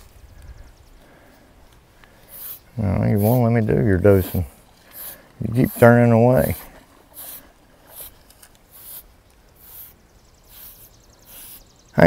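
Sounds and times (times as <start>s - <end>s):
brush rasping through coat: 2.3s - 11.6s.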